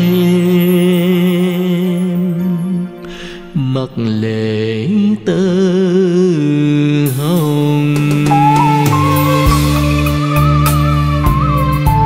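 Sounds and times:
man singing with vibrato: 0.0 - 9.9
band accompaniment: 7.2 - 12.0.

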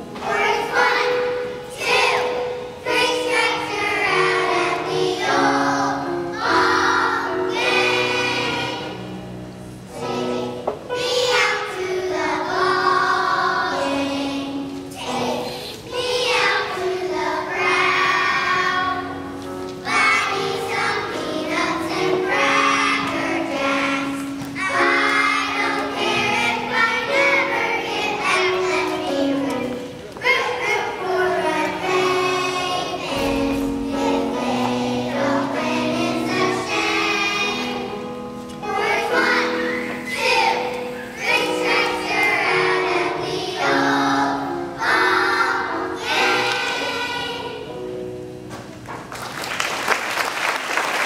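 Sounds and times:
children's choir singing: 0.0 - 48.6
piano accompaniment: 0.0 - 51.0.

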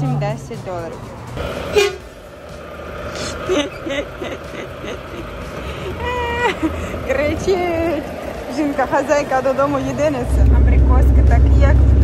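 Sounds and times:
traffic: 0.0 - 12.0
vehicle horn toot: 1.7 - 2.1.

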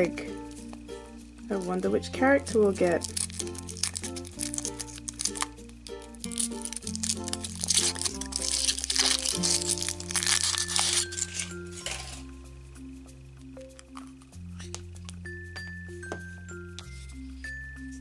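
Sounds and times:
background music with bass line: 0.0 - 10.0, 11.2 - 18.0
foil wrapper crinkling and tearing: 2.5 - 12.4, 13.7 - 15.2.

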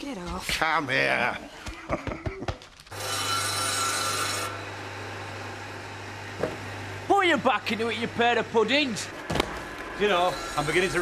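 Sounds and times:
saw blade cutting log: 2.9 - 4.8, 10.0 - 11.0
saw bench motor hum: 2.9 - 11.0.

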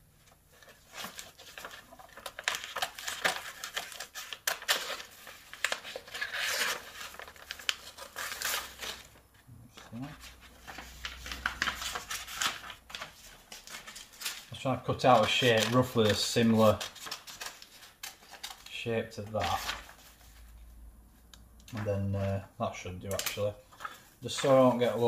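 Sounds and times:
paper rustling: 0.3 - 20.6, 21.7 - 22.4, 23.1 - 25.0.

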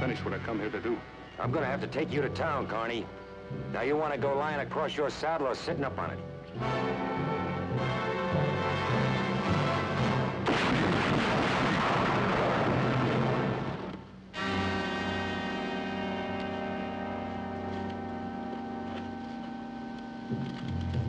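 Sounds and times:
dramatic orchestral music: 6.3 - 10.5, 12.2 - 19.4
gunshot: 10.4 - 14.0.

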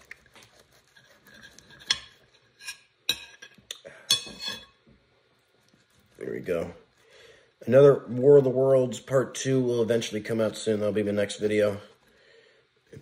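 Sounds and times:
knife scraping food: 0.0 - 4.8.

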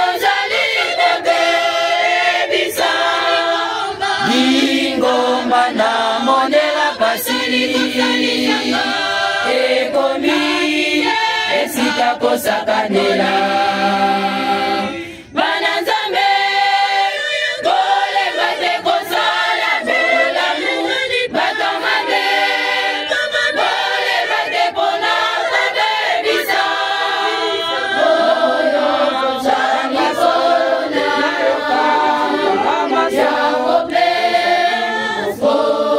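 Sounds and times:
women's choir singing a cappella: 0.0 - 35.9.

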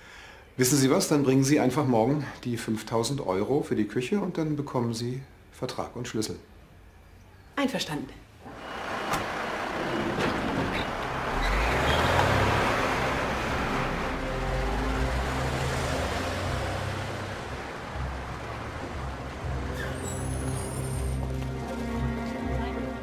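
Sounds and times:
diesel engine rumbling: 8.4 - 23.0.

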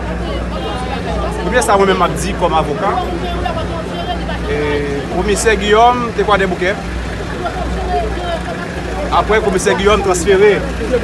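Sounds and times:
quiet voices talking: 0.0 - 11.0.

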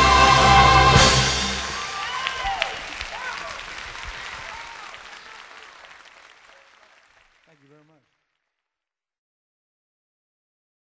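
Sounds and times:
audience applauding: 0.0 - 8.7.

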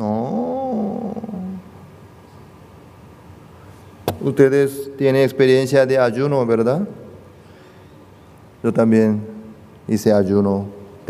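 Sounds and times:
man saying no creakily: 0.0 - 1.6.

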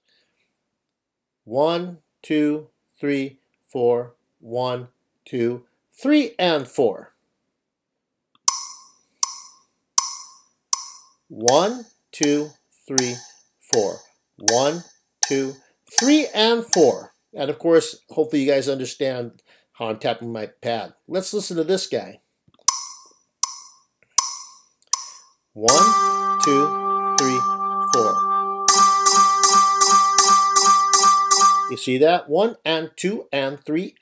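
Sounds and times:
woodblock click-track beats: 8.5 - 16.9, 22.7 - 31.8.

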